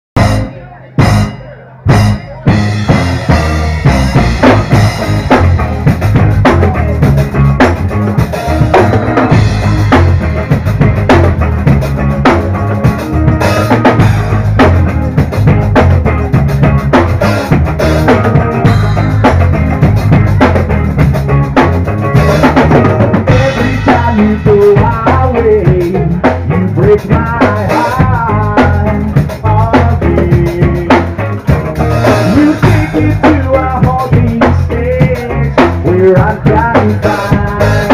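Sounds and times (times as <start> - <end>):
drum hits: 0.2 - 37.9
live rock band playing: 0.2 - 37.9.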